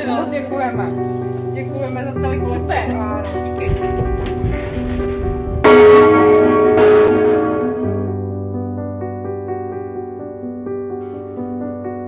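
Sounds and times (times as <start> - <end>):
large church bell ringing: 5.6 - 8.3.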